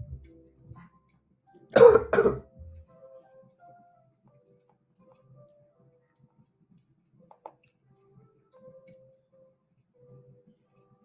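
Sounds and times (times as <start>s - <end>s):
quiet background music: 0.0s - 11.0s
man coughing: 1.8s - 2.4s.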